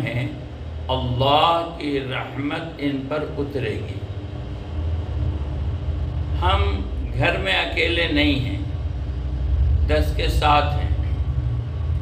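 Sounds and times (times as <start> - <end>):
faint hum: 0.0 - 12.0
steady low rumble: 0.0 - 12.0.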